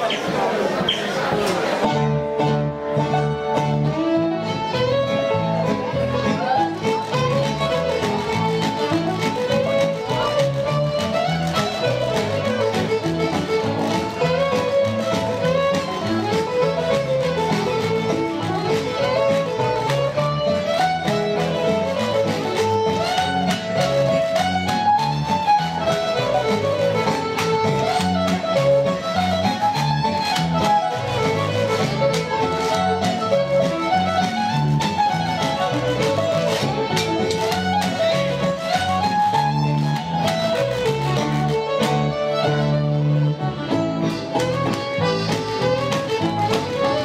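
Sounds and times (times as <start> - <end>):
fiddle melody: 0.0 - 47.0
strummed guitar rhythm: 0.0 - 47.0.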